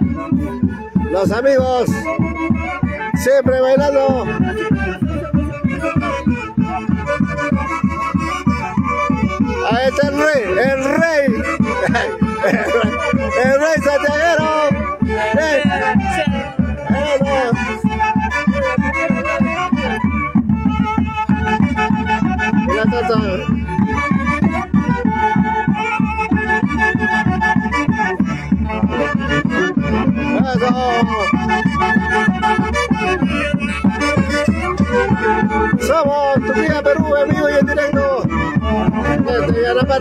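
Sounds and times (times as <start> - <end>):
bass drums beating: 0.0 - 40.0
saxophones playing melody: 4.2 - 9.6, 10.4 - 35.9.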